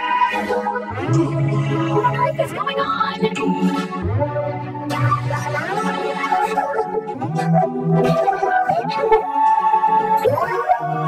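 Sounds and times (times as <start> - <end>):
vocoder synth chords: 0.0 - 11.0.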